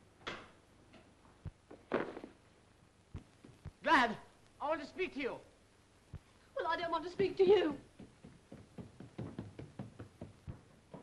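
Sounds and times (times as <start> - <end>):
hurried footsteps: 3.1 - 3.9, 7.8 - 11.0.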